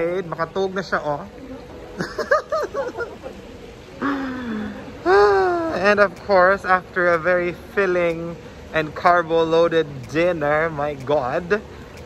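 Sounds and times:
outdoor background noise: 0.0 - 12.0
person's drawn-out vocal sound: 4.0 - 5.8.

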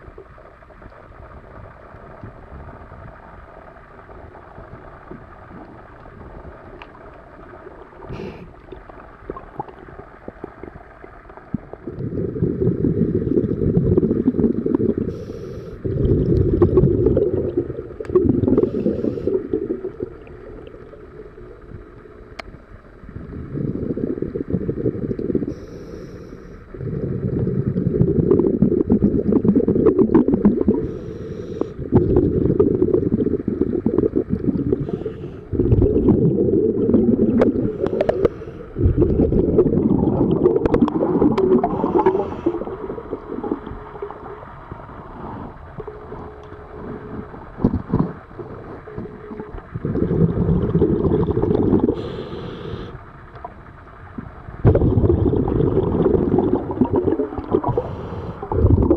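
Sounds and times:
regulator exhaust bubbles underwater: 0.0 - 58.9.

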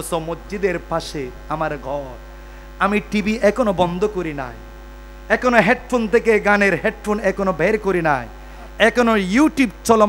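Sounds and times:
sound system mains hum: 0.0 - 10.0.

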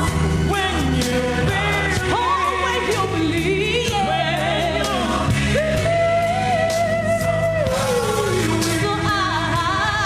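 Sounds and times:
person singing a ballad: 0.0 - 10.0.

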